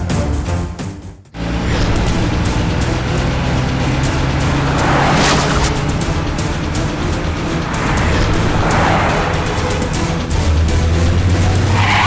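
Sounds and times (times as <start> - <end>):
dramatic background music: 0.0 - 12.0
car engine on dirt track: 1.3 - 12.0
rushing noise: 1.4 - 12.0.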